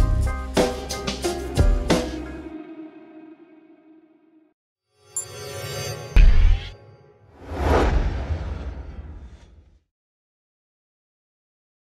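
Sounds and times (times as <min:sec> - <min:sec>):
low rumble: 0:07.4 - 0:09.7
whoosh swoosh: 0:07.4 - 0:09.8.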